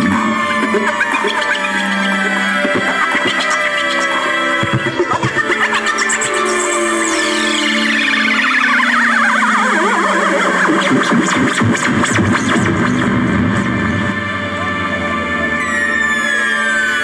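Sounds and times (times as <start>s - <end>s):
low drone: 0.0s - 10.6s, 12.1s - 17.0s
synthesizer tones sliding downward: 0.0s - 17.0s.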